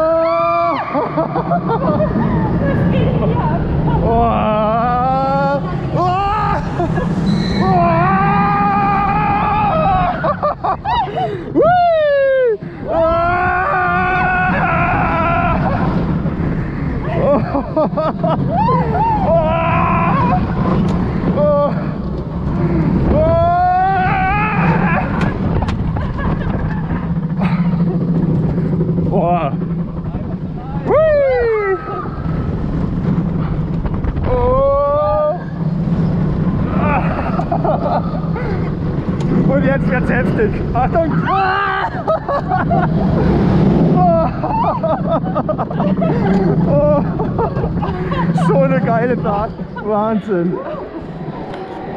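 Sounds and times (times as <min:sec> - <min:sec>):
rider whooping and wailing: 0:00.0 - 0:40.0, 0:40.6 - 0:49.8
roller coaster rumbling on track: 0:00.0 - 0:51.9.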